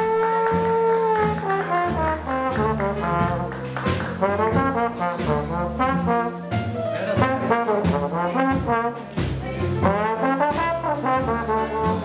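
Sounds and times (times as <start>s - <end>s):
drums playing swing beat: 0.0s - 12.0s
trombone playing jazz melody: 0.0s - 12.0s
upright double bass: 0.0s - 12.0s.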